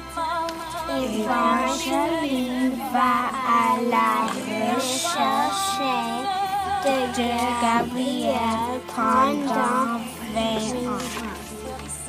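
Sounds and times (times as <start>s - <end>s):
high voice singing: 0.0s - 12.0s
music: 0.0s - 12.0s.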